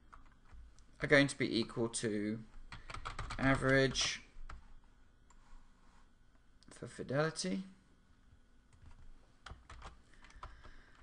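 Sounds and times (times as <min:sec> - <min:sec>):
computer keyboard clicks: 0:02.7 - 0:04.6, 0:08.8 - 0:11.0.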